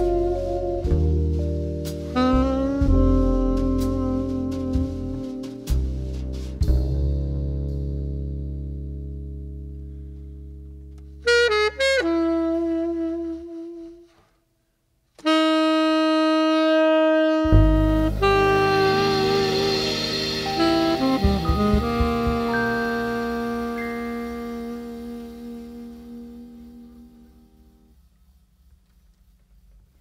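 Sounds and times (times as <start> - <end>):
saxophone notes: 0.0 - 5.9, 10.9 - 14.3, 15.2 - 27.9
jazz band playing: 0.0 - 9.7, 10.7 - 14.0, 15.2 - 28.0.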